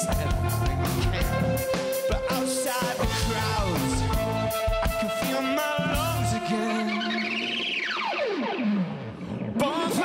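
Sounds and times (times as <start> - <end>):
live rock song: 0.0 - 10.0
wavering electronic tone: 0.5 - 9.6.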